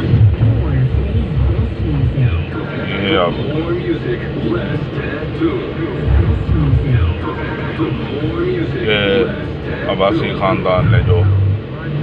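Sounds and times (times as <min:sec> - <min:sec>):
car engine and road rumble: 0:00.0 - 0:12.0
voices: 0:00.0 - 0:12.0.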